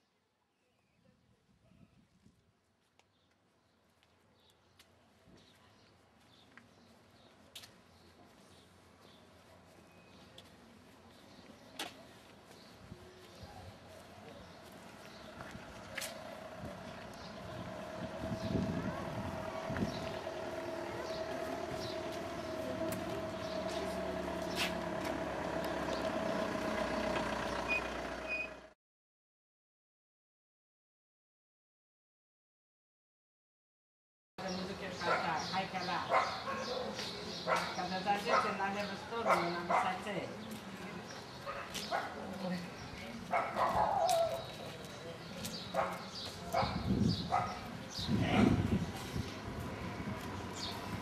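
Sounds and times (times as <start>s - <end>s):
people's voices: 10.4s - 26.0s
vehicle engine humming: 14.0s - 28.8s, 48.5s - 51.0s
dog barking: 35.0s - 35.4s, 36.1s - 38.6s, 39.2s - 40.0s, 41.4s - 42.2s, 43.3s - 44.4s, 45.7s - 47.7s.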